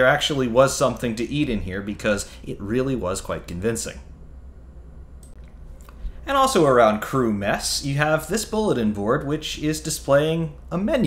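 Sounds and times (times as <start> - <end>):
ventilation machinery hum: 0.0 - 11.0
faint short clicks: 5.2 - 6.0.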